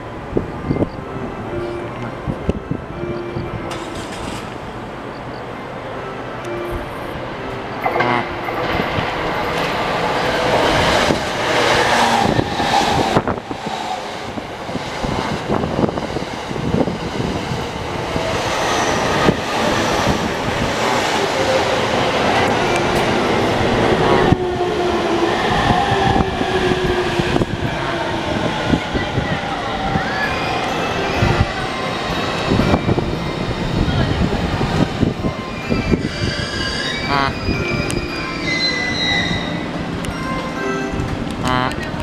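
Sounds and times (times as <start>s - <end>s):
train wheels on rails: 3.7s - 5.4s, 7.8s - 42.0s.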